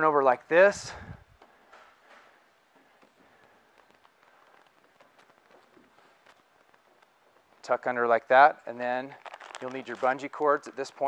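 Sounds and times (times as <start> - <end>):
soft taps and rustles: 1.2 - 7.7.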